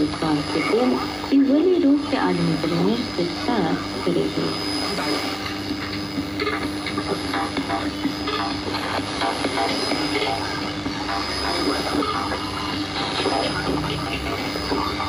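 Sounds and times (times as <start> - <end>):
faint radio programme: 0.0 - 15.0
radio static hiss: 0.0 - 15.0.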